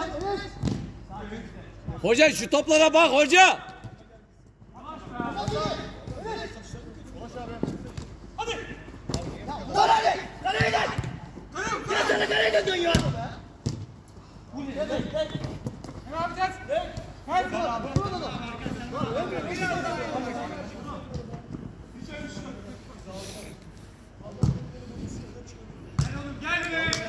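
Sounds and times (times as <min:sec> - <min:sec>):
men shouting: 0:11.6 - 0:12.9
ball kicked on artificial turf: 0:12.9 - 0:13.9, 0:26.0 - 0:26.2.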